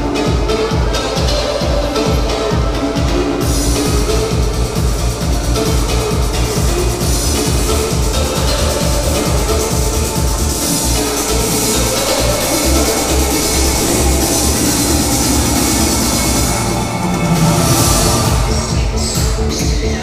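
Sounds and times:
loud music with heavy beat: 0.0 - 20.0.

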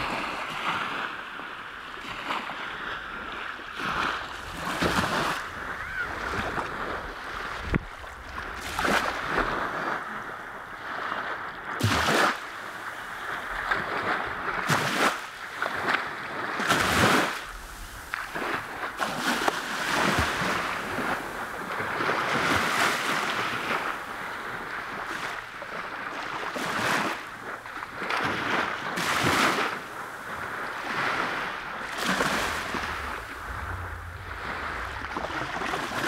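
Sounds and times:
wind buffeting microphone: 0.0 - 11.7, 15.5 - 26.0, 27.0 - 36.0
small waves washing on beach: 0.0 - 36.0.

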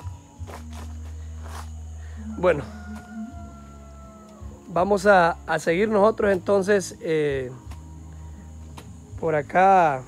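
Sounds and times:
footsteps walking: 0.0 - 1.8.

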